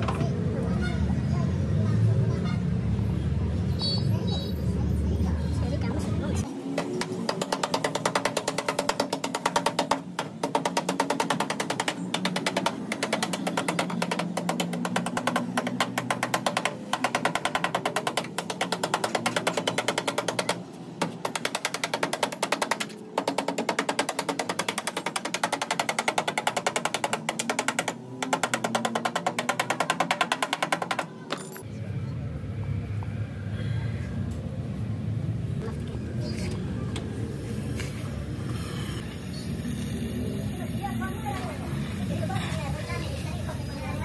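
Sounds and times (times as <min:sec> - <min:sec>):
hammer tapping on sheet steel: 0:06.7 - 0:31.5.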